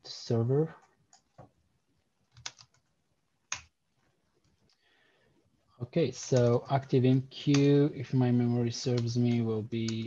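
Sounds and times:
keyboard key presses: 0:02.3 - 0:02.9, 0:03.5 - 0:03.7.

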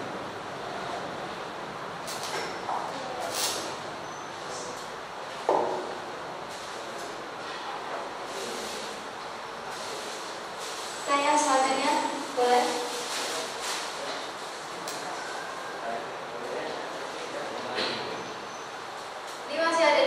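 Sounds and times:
hall room noise hiss: 0:00.0 - 0:20.0.

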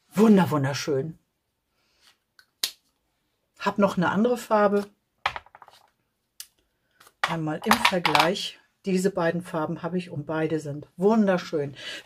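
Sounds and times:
person speaking: 0:00.0 - 0:01.2, 0:03.6 - 0:05.0, 0:07.2 - 0:12.0.

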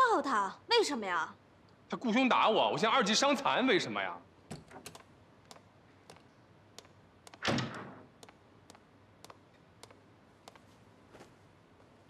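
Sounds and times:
door shutting with a thud: 0:07.4 - 0:08.1.

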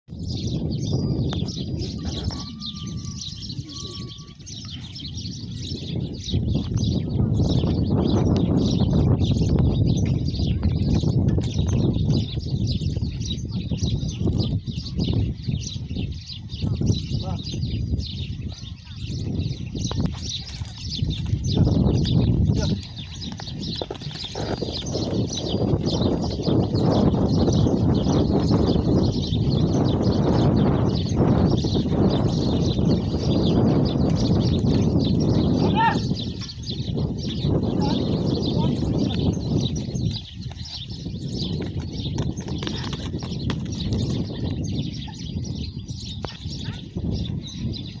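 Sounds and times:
small birds chirping: 0:00.1 - 0:48.0.

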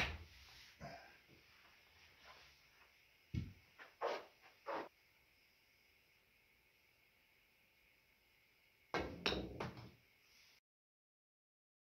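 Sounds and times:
pool cue striking ball: 0:09.0 - 0:10.0.

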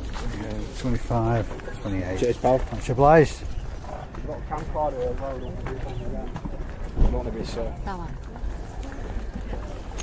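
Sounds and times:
outdoor crowd hubbub: 0:00.0 - 0:10.0.

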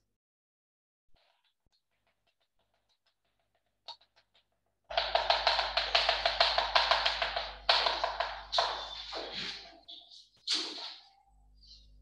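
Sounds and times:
chalk tapping on blackboard: 0:04.9 - 0:09.6.

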